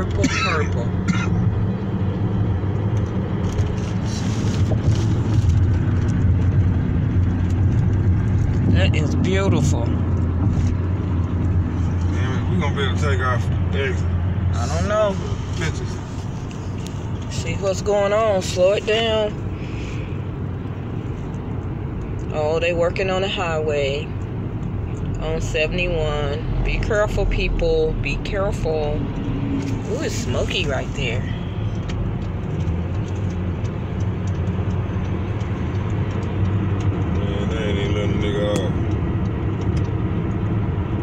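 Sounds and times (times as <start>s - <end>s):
car road noise drone: 0.0s - 41.0s.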